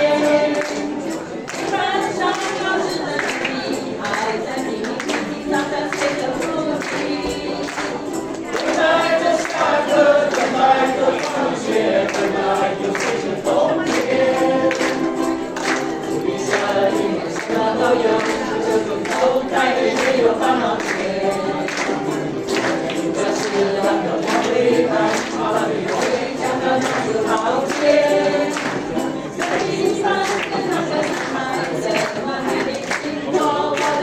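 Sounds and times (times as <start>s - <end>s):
group singing in chorus: 0.0s - 34.0s
ukuleles strumming chords: 0.0s - 34.0s.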